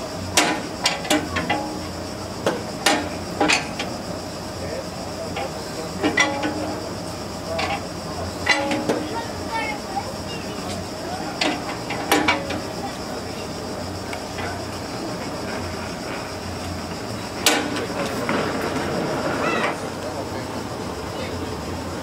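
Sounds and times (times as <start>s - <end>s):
gas engine chugging slowly: 0.0s - 22.0s.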